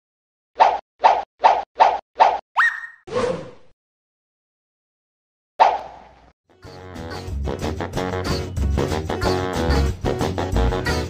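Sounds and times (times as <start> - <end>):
cartoon plops: 2.6 - 3.0
upward-sweeping whistle: 2.6 - 3.0.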